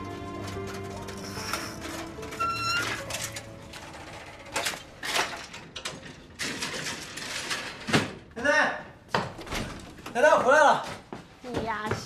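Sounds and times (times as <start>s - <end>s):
metal gate rattling: 0.2s - 8.1s.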